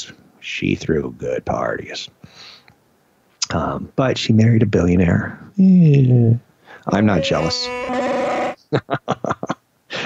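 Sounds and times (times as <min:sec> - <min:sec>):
man laughing: 0:08.7 - 0:10.0.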